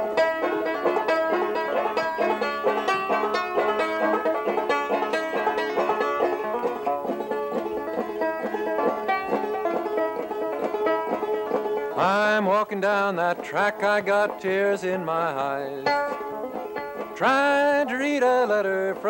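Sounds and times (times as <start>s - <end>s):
banjo picking: 0.0s - 19.0s.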